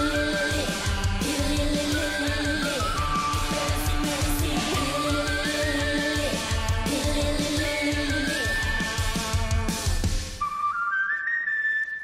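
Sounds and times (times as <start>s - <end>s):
drum and guitar backing: 0.0s - 10.4s
high flute melody: 10.4s - 12.0s.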